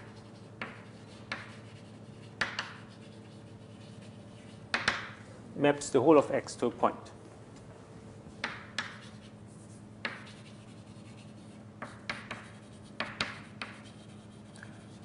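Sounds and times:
chalk scratching on blackboard: 0:00.0 - 0:04.9, 0:08.8 - 0:15.0
faint room hum: 0:00.0 - 0:15.0.

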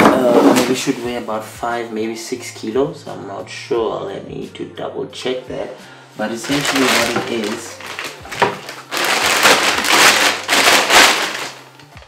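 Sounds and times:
plastic bag crinkling: 0:06.2 - 0:12.0.

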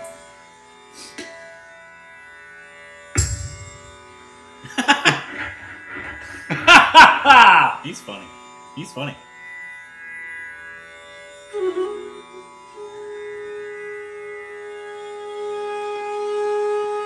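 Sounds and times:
steady drone: 0:03.2 - 0:09.1
bamboo flute playing: 0:11.4 - 0:17.0.

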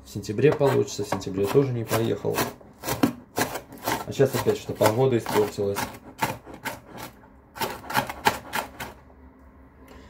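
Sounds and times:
knife chopping on cutting board: 0:00.5 - 0:09.0.

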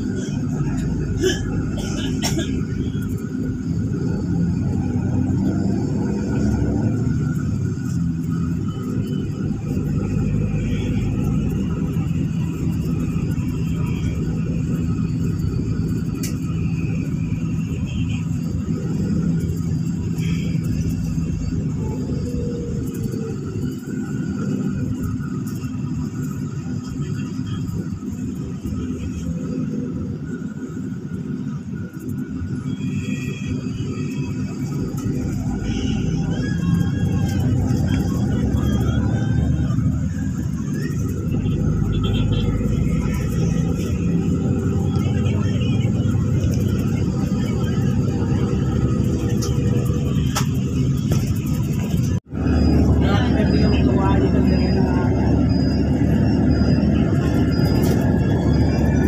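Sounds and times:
bus engine and road rumble: 0:00.0 - 0:59.0.

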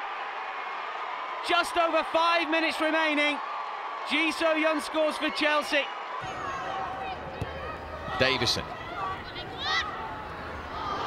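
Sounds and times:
distant shouts: 0:04.0 - 0:11.0.

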